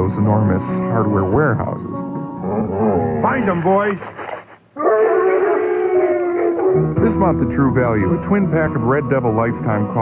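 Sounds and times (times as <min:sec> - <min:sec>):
dog howling: 0:02.3 - 0:03.3, 0:04.8 - 0:07.0.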